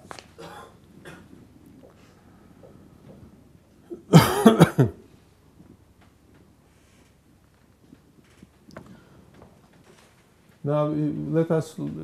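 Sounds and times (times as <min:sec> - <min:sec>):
man coughing: 0:00.4 - 0:01.3, 0:03.9 - 0:05.1.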